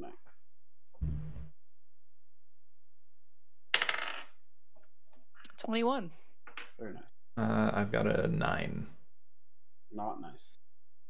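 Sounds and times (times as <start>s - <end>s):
dice rolling: 3.7s - 4.4s, 6.5s - 6.8s.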